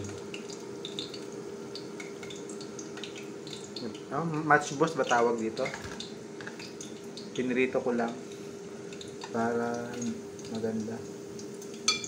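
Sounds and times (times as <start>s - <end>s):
chicken sizzling in oil: 0.0s - 12.0s
faint steady hum: 0.0s - 12.0s.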